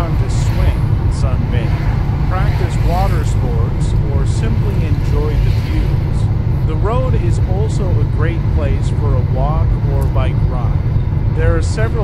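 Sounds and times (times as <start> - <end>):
person talking: 0.0 - 10.8
road and engine rumble: 0.0 - 12.0.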